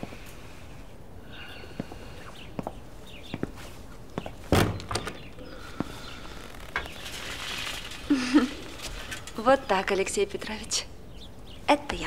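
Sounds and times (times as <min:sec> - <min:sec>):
door shutting thunk: 0:04.5 - 0:05.3.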